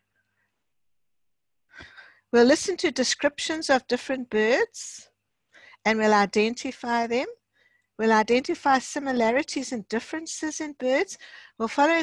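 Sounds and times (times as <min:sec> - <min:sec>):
person breathing in: 0:01.7 - 0:02.3.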